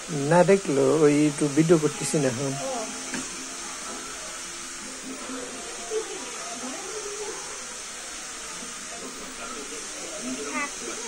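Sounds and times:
faint indistinct voices: 0:00.0 - 0:11.0
steady hiss: 0:00.0 - 0:11.0.

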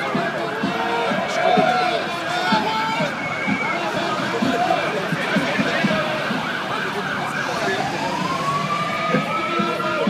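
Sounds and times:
marching crowd: 0:00.0 - 0:10.0.

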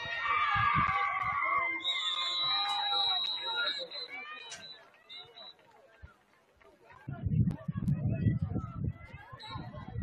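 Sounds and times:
crowd shouting: 0:00.0 - 0:05.6.

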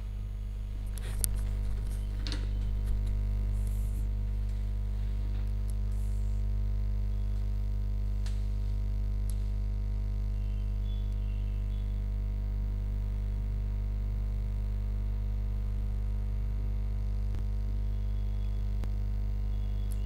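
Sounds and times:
low electrical mains hum: 0:00.0 - 0:20.0.

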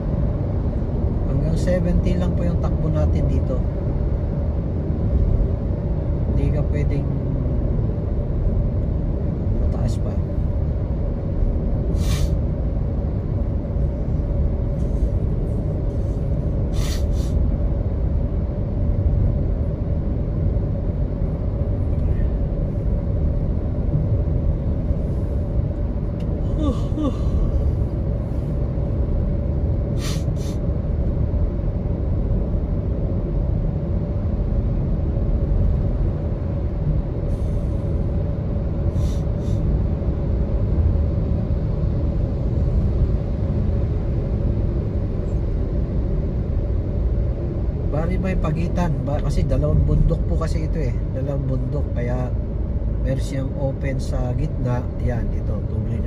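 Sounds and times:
vehicle driving through tunnel: 0:00.0 - 0:56.0.

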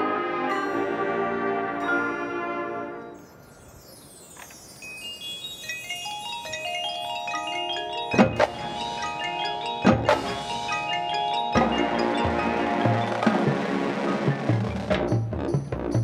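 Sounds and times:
ringing mallet percussion: 0:00.5 - 0:16.0
sharp percussion hits: 0:07.4 - 0:16.0.

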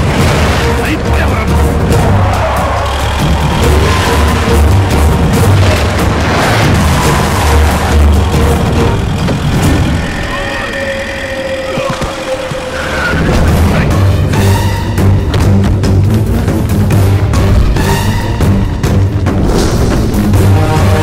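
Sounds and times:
dramatic action film score: 0:00.0 - 0:21.0.

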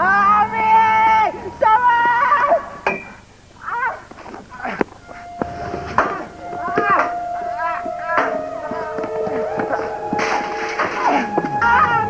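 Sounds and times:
steady held tone: 0:00.4 - 0:12.0.

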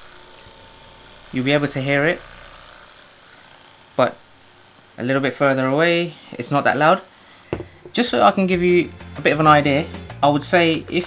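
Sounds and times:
massage gun running: 0:00.0 - 0:08.1.

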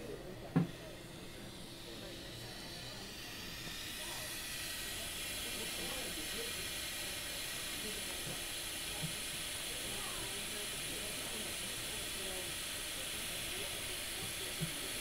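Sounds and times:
air hissing through tubing: 0:00.0 - 0:15.0.

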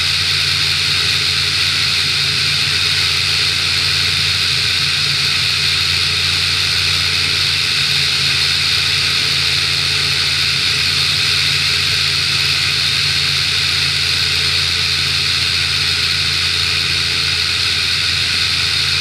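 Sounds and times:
aircraft engine and propeller drone: 0:00.0 - 0:19.0.

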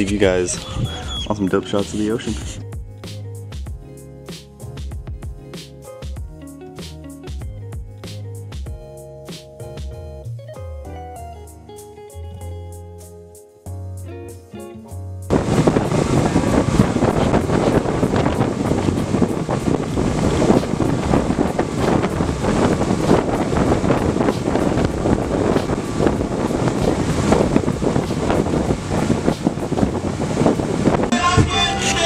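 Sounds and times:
boat wake: 0:00.0 - 0:02.7, 0:15.3 - 0:32.0
wind buffeting microphone: 0:00.0 - 0:02.7, 0:15.3 - 0:31.8
outboard motor rushing: 0:15.3 - 0:32.0.

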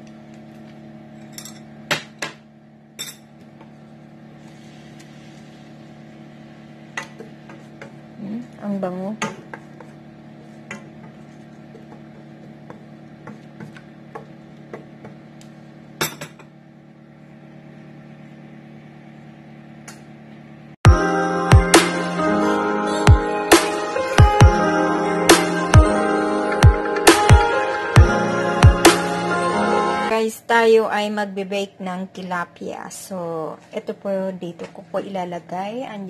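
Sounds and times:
low steady hum: 0:00.0 - 0:26.8, 0:28.0 - 0:36.0.

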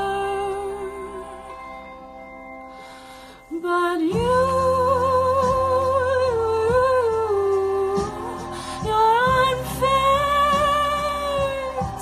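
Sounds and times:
backing track music: 0:00.0 - 0:12.0.

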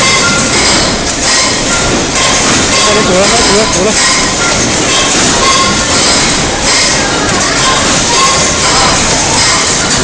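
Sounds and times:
packaging machine running: 0:00.0 - 0:10.0.

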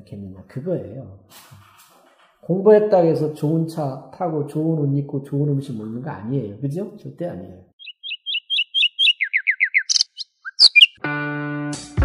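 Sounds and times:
birdsong chirps and calls: 0:07.8 - 0:11.0.

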